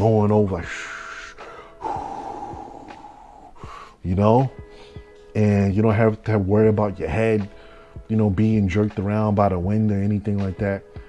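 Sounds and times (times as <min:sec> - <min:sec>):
person blowing with mouth: 0:01.0 - 0:04.0.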